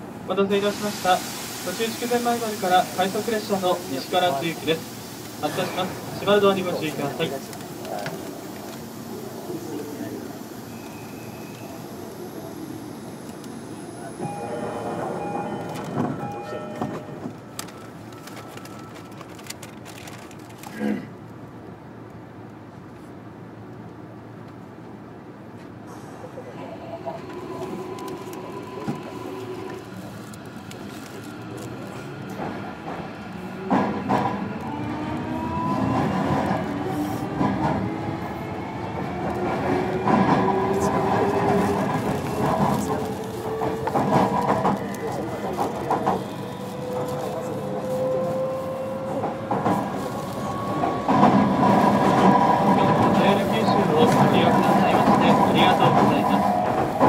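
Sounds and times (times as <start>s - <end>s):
train clunk: 14.2s - 19.0s, 32.3s - 34.6s, 39.0s - 57.0s
wheel and rail noise: 22.0s - 57.0s.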